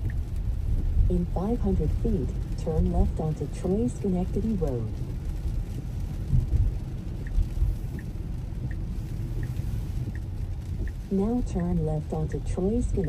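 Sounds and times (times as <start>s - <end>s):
rain on car: 0.0s - 13.0s
turn signal ticking: 0.0s - 13.0s
tyres rumbling on wet road: 0.0s - 13.0s.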